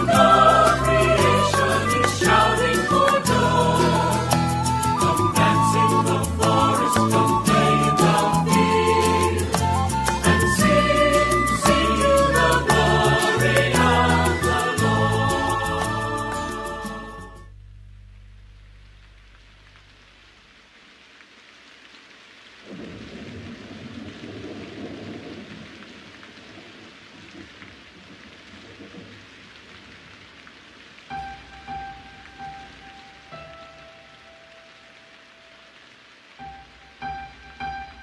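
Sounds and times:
rain hiss: 0.0 - 38.0
low rumble of thunder: 22.6 - 26.7
soft piano notes: 31.1 - 35.6, 36.4 - 38.0.

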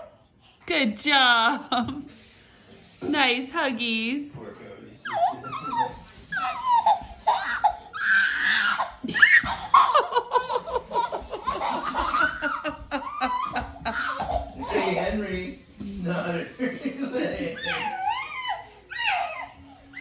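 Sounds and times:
people laughing: 9.0 - 15.4.

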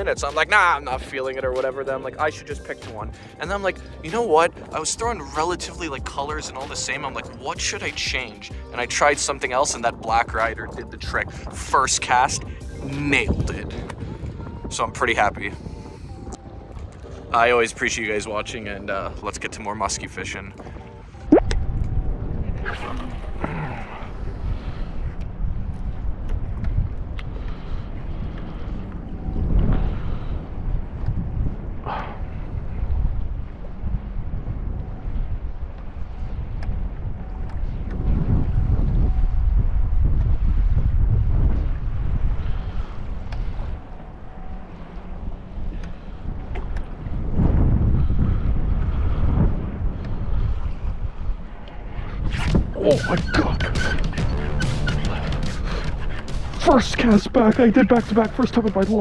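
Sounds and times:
wind buffeting microphone: 0.0 - 59.0
water lapping around boat: 18.3 - 21.4, 22.4 - 51.9, 52.6 - 59.0.

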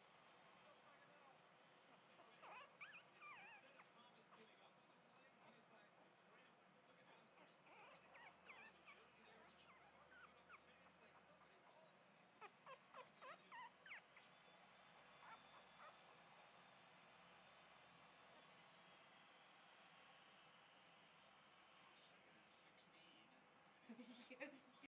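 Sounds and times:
puppies whimpering: 2.3 - 4.5, 7.4 - 11.3, 12.4 - 14.3, 15.2 - 16.0.

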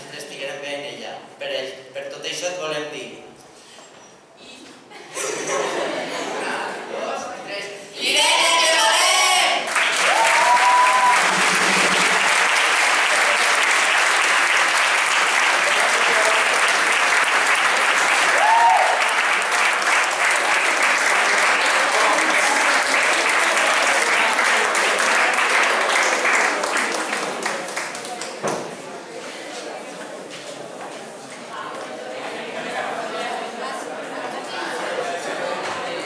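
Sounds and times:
audience applauding: 9.6 - 28.4.

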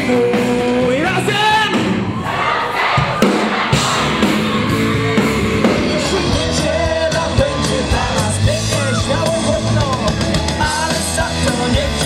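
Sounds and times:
sung lead vocal: 0.0 - 2.2, 3.7 - 12.0
crowd voices: 0.0 - 12.0
live rock band playing: 0.0 - 12.0.

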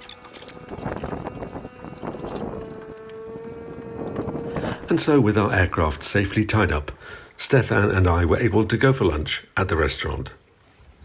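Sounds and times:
steady humming tone: 0.0 - 6.5
wind on microphone: 0.2 - 6.0.

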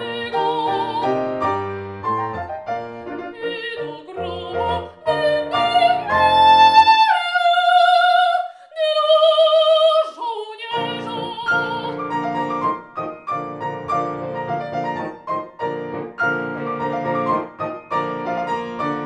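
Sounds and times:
soprano singing opera: 0.0 - 1.4, 3.3 - 12.0
grand piano: 0.0 - 19.0.

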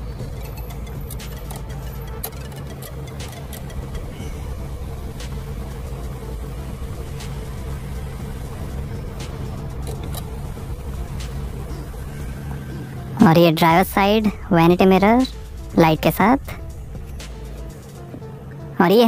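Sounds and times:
low hum inside car cabin: 0.0 - 19.0.

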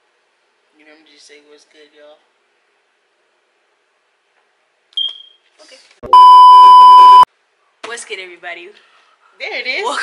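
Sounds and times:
censor bleep: 6.1 - 7.3.

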